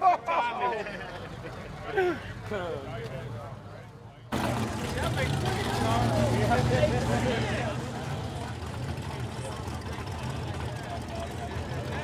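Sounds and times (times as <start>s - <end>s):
crowd chatter: 0.0s - 12.0s
car engines idling: 0.4s - 12.0s.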